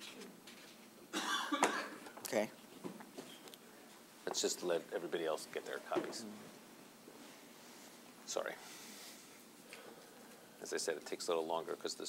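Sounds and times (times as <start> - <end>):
person coughing: 1.1 - 2.0.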